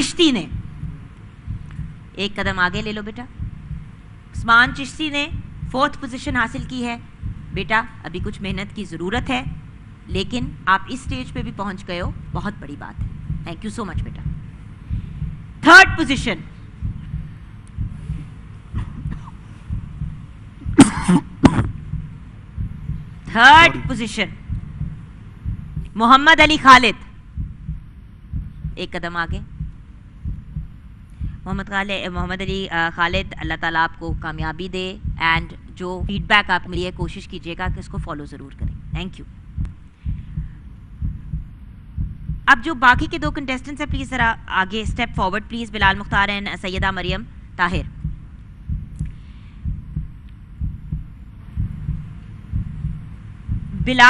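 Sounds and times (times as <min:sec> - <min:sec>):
woman speaking: 0:00.0 - 0:00.6, 0:02.1 - 0:03.4, 0:04.3 - 0:14.4, 0:15.6 - 0:16.5, 0:23.2 - 0:24.4, 0:25.9 - 0:27.2, 0:28.8 - 0:29.6, 0:31.4 - 0:39.3, 0:42.5 - 0:47.9, 0:53.7 - 0:54.0
heartbeat suspense thumps: 0:00.0 - 0:54.0.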